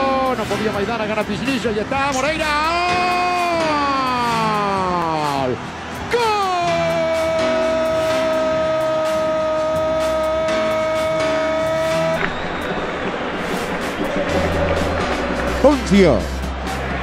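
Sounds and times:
background music with steady beat: 0.0s - 17.0s
commentator's long goal cry: 6.1s - 12.2s.

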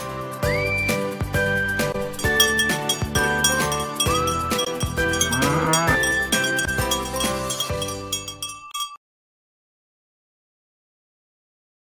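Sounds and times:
upbeat music with chiming bells: 0.0s - 9.0s.

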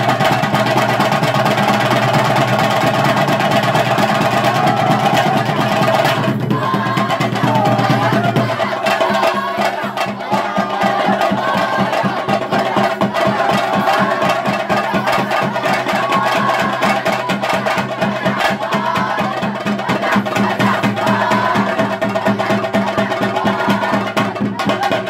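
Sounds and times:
drums played in fast strokes: 0.0s - 25.0s.

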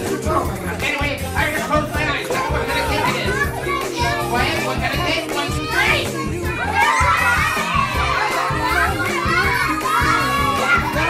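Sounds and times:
background music: 0.0s - 11.0s
children calling and chattering: 0.0s - 11.0s.

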